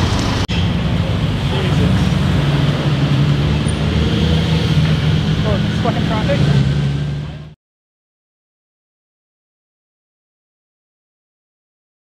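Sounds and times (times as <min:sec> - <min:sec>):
car engine drone: 0:00.0 - 0:07.6
passing vehicles: 0:00.0 - 0:07.6.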